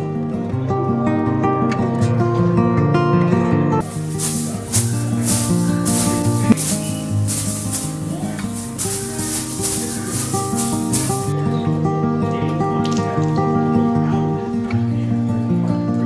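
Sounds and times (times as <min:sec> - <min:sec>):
acoustic guitar music: 0:00.0 - 0:16.0
broom swishing across sheet: 0:03.8 - 0:11.3.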